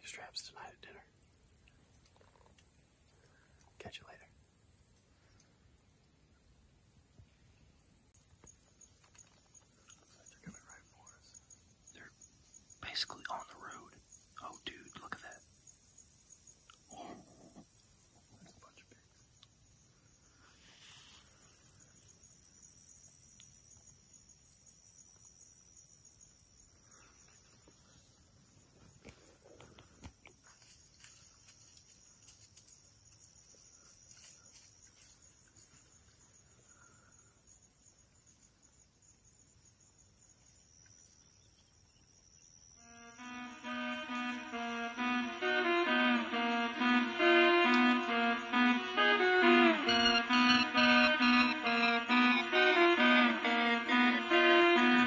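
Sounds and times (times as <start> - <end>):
woodland ambience: 0.0 - 55.0
high-pitched insect drone: 42.6 - 55.0
background music: 43.2 - 55.0.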